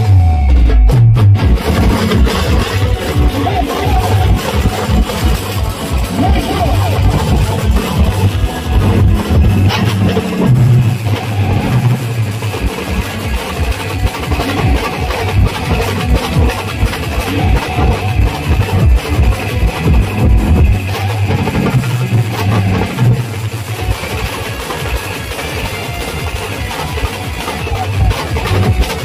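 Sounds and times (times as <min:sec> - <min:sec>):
amplified melody: 0:00.0 - 0:29.0
drums beating fast rhythm: 0:00.0 - 0:29.0.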